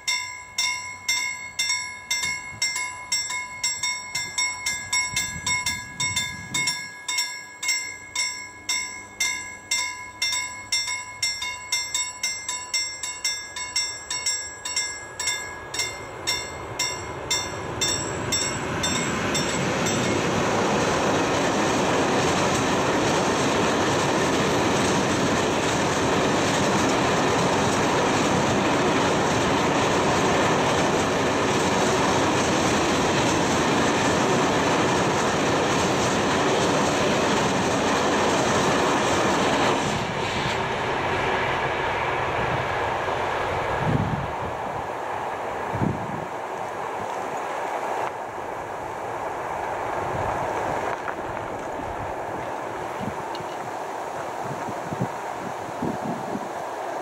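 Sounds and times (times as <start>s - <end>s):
level crossing warning bell: 0.0s - 22.5s
train wheels on rails: 0.0s - 57.0s.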